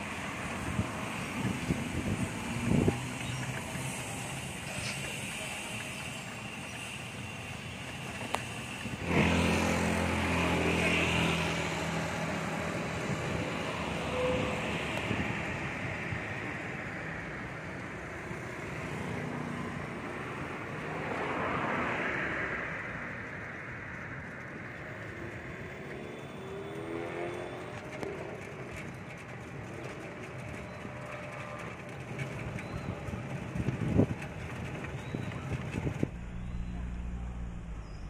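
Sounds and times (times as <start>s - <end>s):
street traffic noise: 0.0s - 38.0s
vehicle passing by: 9.0s - 16.3s, 18.8s - 28.4s, 35.4s - 38.0s.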